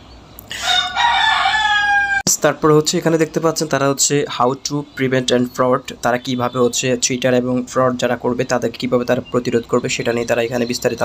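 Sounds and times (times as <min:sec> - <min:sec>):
rooster crowing: 0:00.5 - 0:02.3.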